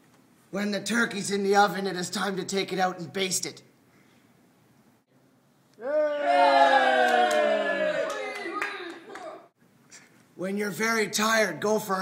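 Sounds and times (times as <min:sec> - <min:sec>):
audience clapping: 0:06.8 - 0:09.5.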